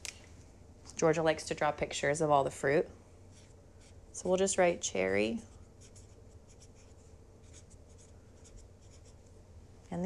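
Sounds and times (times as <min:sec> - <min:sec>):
pen scratching: 0:05.8 - 0:09.2.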